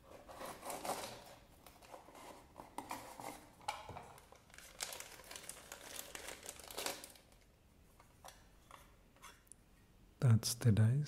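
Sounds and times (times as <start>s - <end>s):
plastic bag crinkling: 4.0s - 7.5s.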